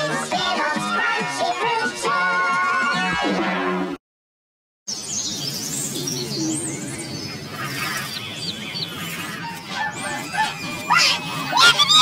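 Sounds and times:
birds chirping: 4.9 - 12.0
loud cry: 9.8 - 12.0.

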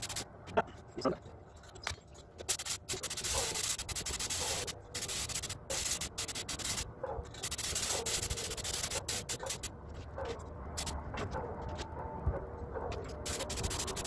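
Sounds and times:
paint spray gun hissing: 0.0 - 0.2, 2.5 - 6.8, 7.4 - 9.7, 13.3 - 14.0.

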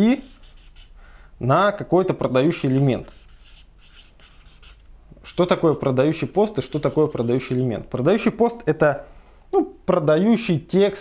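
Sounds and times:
marker scratching on paper: 0.0 - 1.0, 2.4 - 8.0.

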